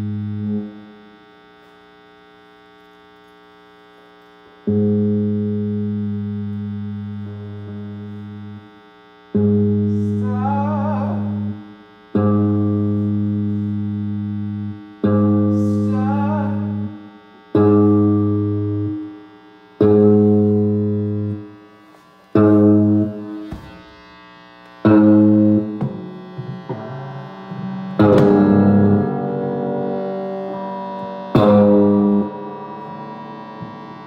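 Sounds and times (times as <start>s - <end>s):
low held notes: 4.6s - 24.1s.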